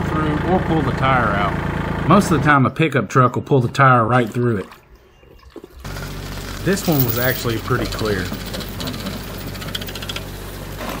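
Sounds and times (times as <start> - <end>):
vehicle engine running: 0.0 - 2.9, 5.8 - 11.0
tire dragging through culvert: 0.0 - 11.0
metallic chain clinks: 6.6 - 9.7.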